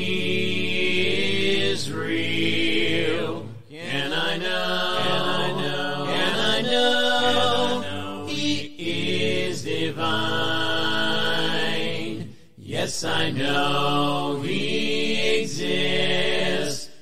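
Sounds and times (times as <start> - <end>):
voices singing a hymn in harmony: 0.0 - 17.0.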